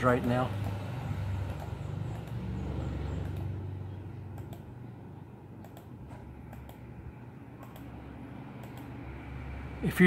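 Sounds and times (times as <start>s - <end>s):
computer mouse clicks: 1.4s - 2.4s, 3.2s - 3.6s, 4.3s - 4.7s, 5.6s - 6.9s, 7.6s - 8.0s, 8.6s - 9.0s.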